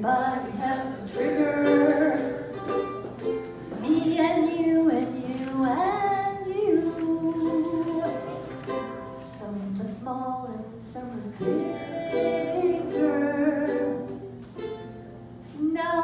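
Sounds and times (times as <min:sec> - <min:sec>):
woman singing: 0:00.0 - 0:02.6, 0:03.8 - 0:08.5, 0:09.2 - 0:14.3, 0:15.5 - 0:16.0
ukulele strumming: 0:00.0 - 0:09.8, 0:11.3 - 0:16.0.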